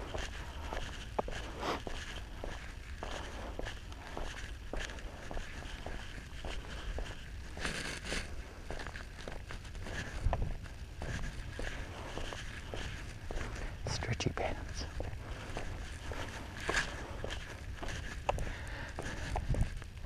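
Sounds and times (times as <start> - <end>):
footsteps on asphalt: 0.0 - 20.0.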